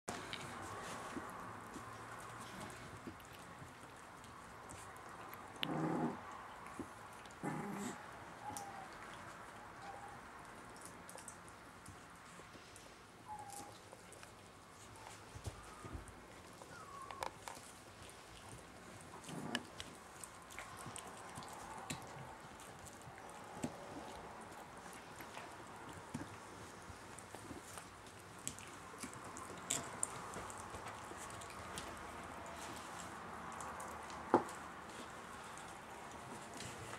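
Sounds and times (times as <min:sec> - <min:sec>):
soft rustles: 0:00.1 - 0:05.6, 0:06.6 - 0:36.9
puppies growling: 0:01.8 - 0:10.2, 0:15.0 - 0:36.9.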